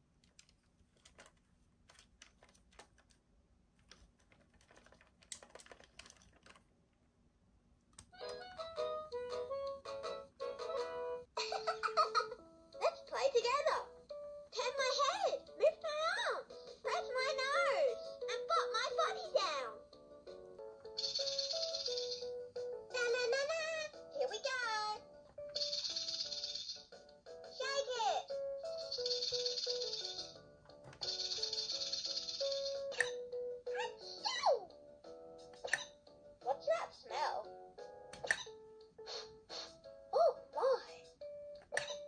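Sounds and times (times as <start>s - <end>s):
toy playing electronic tune: 19.7s - 24.1s, 25.0s - 27.6s, 28.2s - 36.7s
fingers tapping plastic toy: 35.4s - 36.2s, 38.0s - 38.7s.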